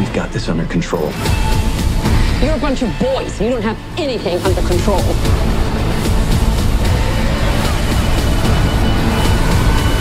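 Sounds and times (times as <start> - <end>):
trailer music: 0.0 - 10.0.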